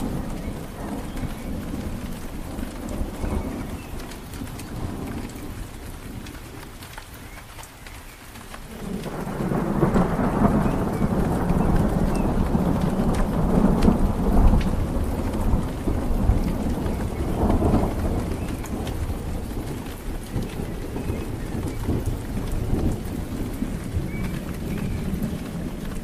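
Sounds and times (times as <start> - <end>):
deep roll of thunder: 0.0 - 7.4, 8.4 - 26.0
rain: 0.0 - 26.0.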